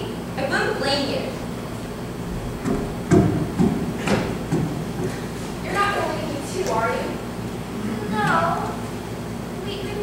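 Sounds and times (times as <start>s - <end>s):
heavy footsteps on stage floor: 2.2s - 5.4s.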